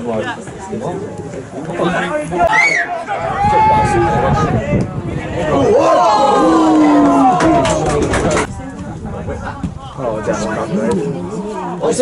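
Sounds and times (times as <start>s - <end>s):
men shouting and calling: 2.0s - 8.5s.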